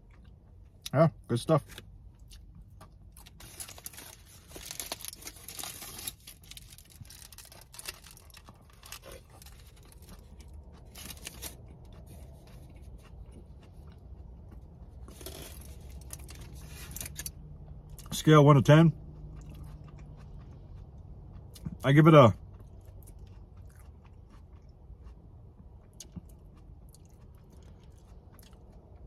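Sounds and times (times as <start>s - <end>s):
quiet chewing: 0.0s - 18.2s, 18.9s - 29.0s
foil wrapper crinkling: 3.2s - 10.1s, 10.9s - 11.6s.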